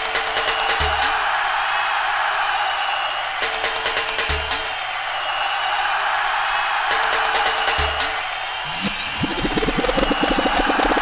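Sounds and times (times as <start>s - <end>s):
hissy electronic music wash: 8.8s - 11.0s.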